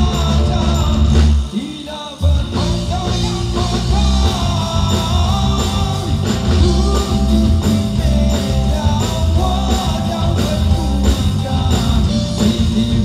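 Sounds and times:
electric guitar: 0.0s - 13.0s
male vocalist singing: 0.0s - 13.0s.

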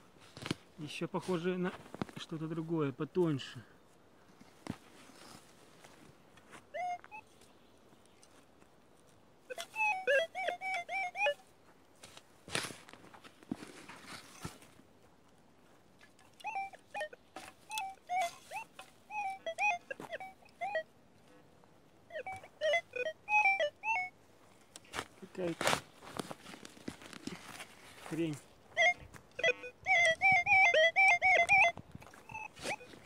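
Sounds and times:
metal detector warbling beeps: 6.7s - 7.3s, 9.5s - 11.5s, 16.4s - 20.9s, 22.1s - 24.2s, 28.1s - 33.0s.

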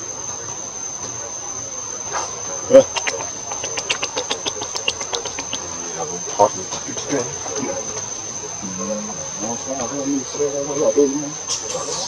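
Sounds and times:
high-pitched insect drone: 0.0s - 12.0s.

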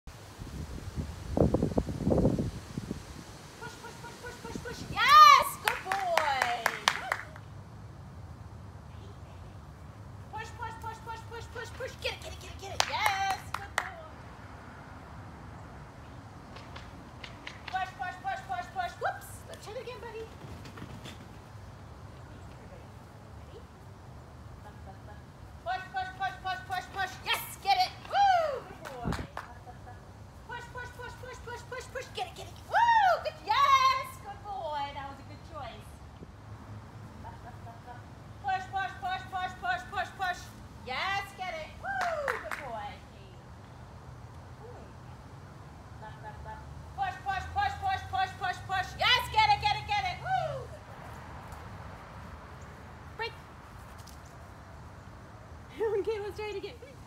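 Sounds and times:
woman's excited high-pitched voice: 3.6s - 7.3s, 10.3s - 14.0s, 25.7s - 29.3s, 30.5s - 35.0s, 38.5s - 42.9s, 47.0s - 50.8s
sharp handclaps: 5.6s - 7.5s, 16.5s - 17.8s, 42.0s - 42.7s.

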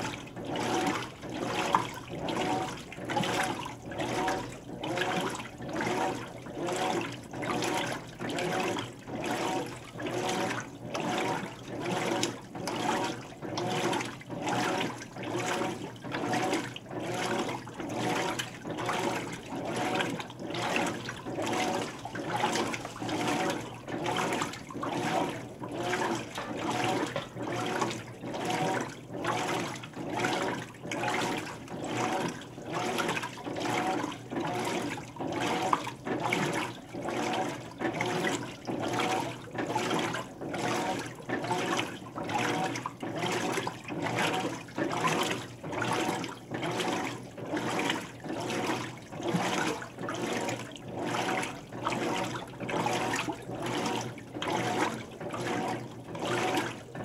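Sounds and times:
washing machine water sloshing: 0.0s - 57.0s.

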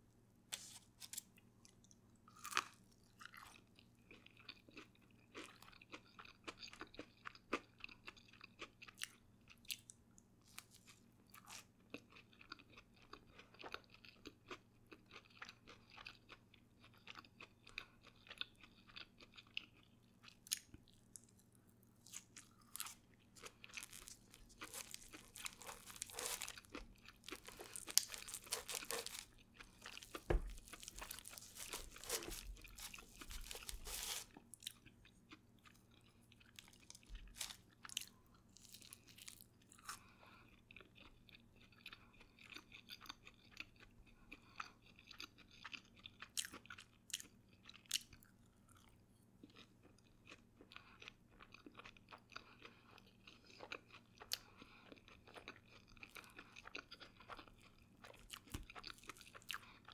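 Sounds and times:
chewing crisp food crunches: 0.6s - 59.9s.

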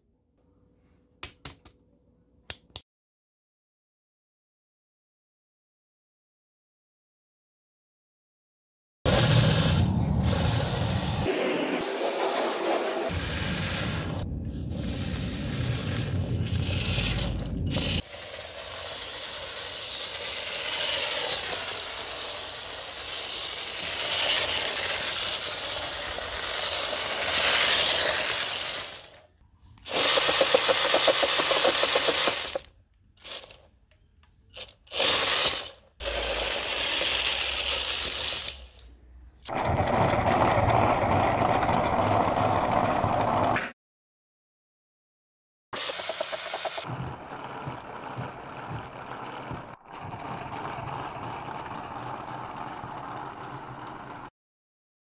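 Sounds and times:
small machinery noise: 9.1s - 29.3s, 29.9s - 33.7s, 34.5s - 43.6s, 45.8s - 54.3s.

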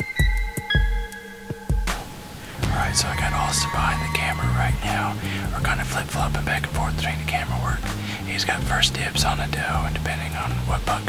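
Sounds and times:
background music with bass line: 0.0s - 11.0s
man whispering: 2.5s - 11.0s.

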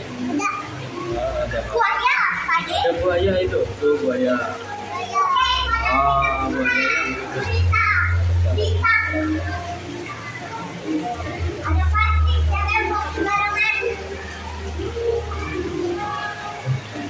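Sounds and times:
children calling and chattering: 0.0s - 17.0s.

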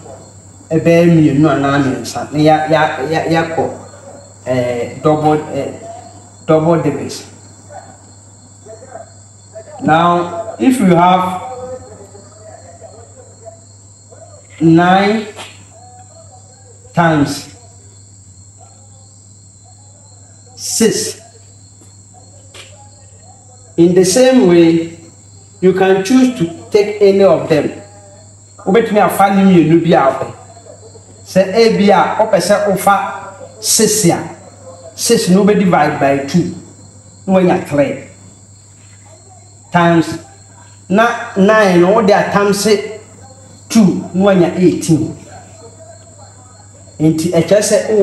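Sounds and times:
person speaking: 0.0s - 8.0s, 8.6s - 17.9s, 18.6s - 38.2s, 38.8s - 48.0s.

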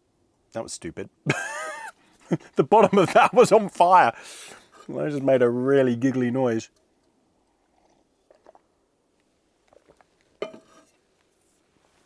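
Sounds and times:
sipping and swallowing: 7.4s - 10.4s
metal cup clinking on table: 10.4s - 10.9s.

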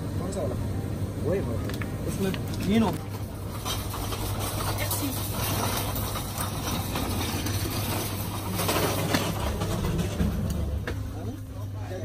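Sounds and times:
steady low hum: 0.0s - 12.0s
basket trolley rattling on tiles: 3.1s - 10.9s.

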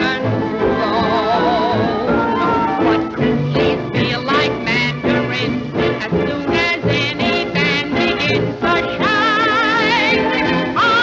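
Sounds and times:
studio orchestra playing: 0.0s - 11.0s.

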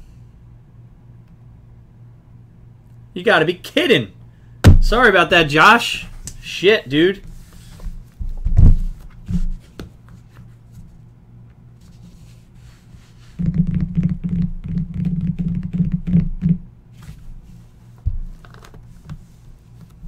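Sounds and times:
knocks on box: 4.6s - 4.9s.

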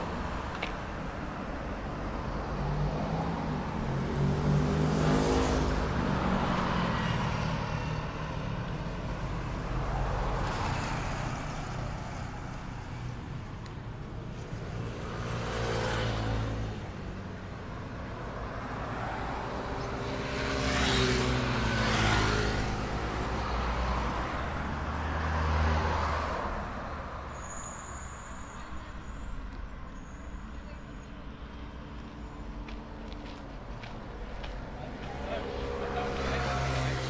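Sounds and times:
cars passing by: 0.0s - 37.0s.

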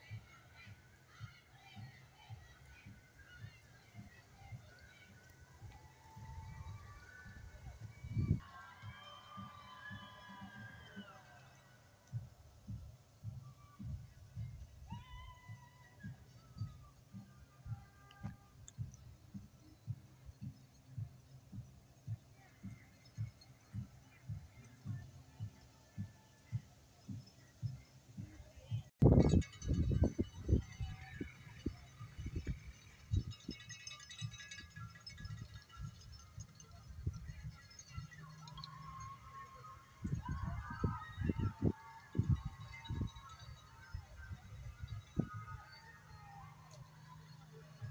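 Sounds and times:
wind buffeting microphone: 0.0s - 11.3s, 12.1s - 47.9s
faint distant high tones: 0.0s - 47.9s.

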